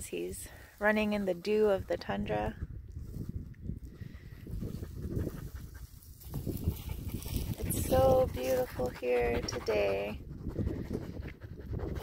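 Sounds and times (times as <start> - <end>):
dog panting: 4.6 - 12.0.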